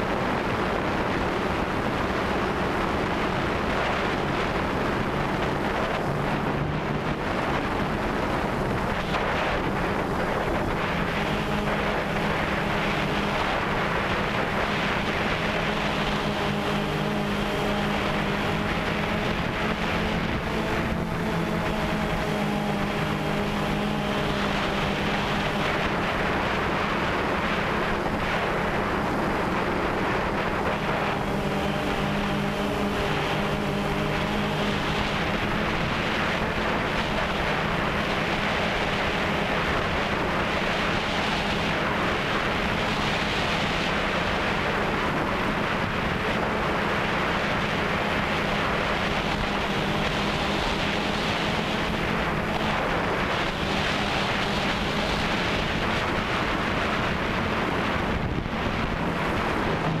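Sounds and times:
drone propellers humming: 0.0 - 60.0
wind on microphone: 0.0 - 60.0.

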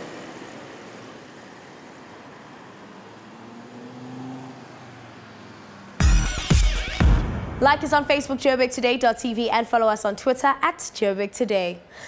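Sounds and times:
vehicle passing: 0.0 - 8.7
city road traffic: 0.0 - 12.0.

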